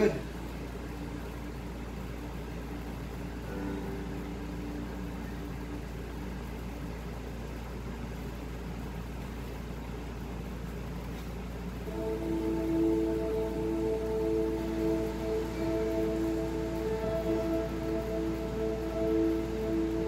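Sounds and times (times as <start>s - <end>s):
background hiss: 0.0s - 20.0s
steady low hum: 0.0s - 20.0s.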